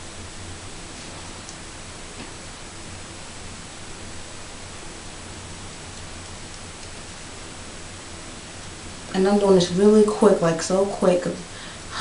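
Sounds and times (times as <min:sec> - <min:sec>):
faint low hum: 0:00.0 - 0:12.0
steady hiss: 0:00.0 - 0:12.0.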